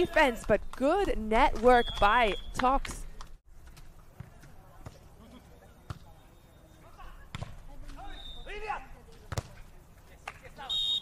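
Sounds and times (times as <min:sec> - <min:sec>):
players shouting calls: 0:00.0 - 0:00.6, 0:05.8 - 0:09.0, 0:10.4 - 0:11.0.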